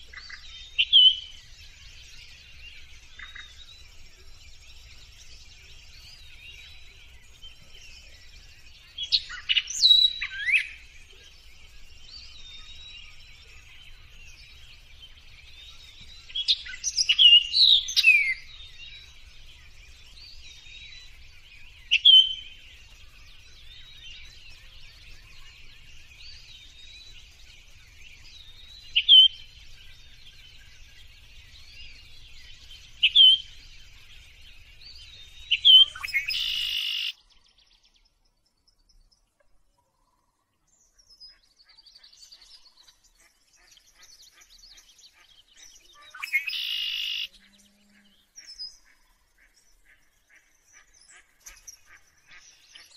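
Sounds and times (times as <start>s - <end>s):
birds chirping: 0.0s - 52.9s
sliding whistled bird calls: 35.5s - 37.2s, 46.0s - 47.3s.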